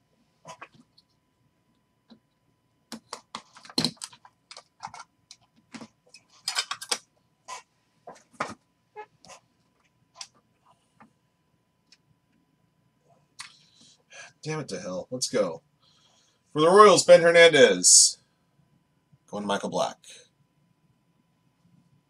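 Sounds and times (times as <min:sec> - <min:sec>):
rustling and clicking: 0:00.5 - 0:07.1.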